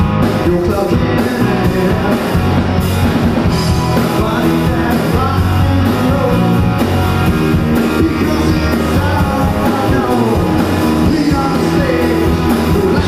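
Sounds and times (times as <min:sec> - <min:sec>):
blues-rock band music: 0:00.0 - 0:13.0.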